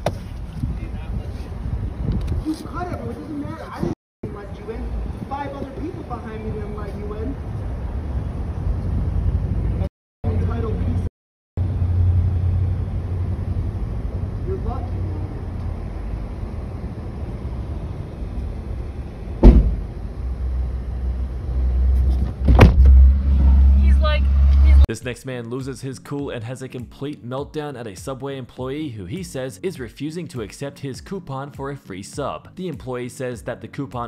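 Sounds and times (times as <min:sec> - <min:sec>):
sharp knock: 0:19.4 - 0:19.8.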